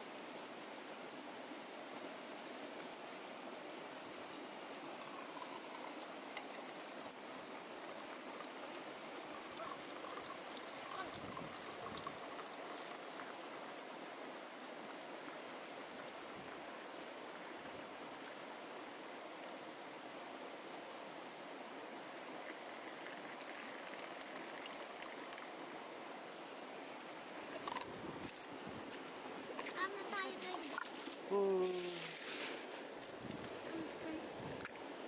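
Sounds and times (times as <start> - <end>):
steady rushing hiss: 0.0 - 35.0
coffee trickling into a mug: 4.8 - 16.6, 22.2 - 25.8.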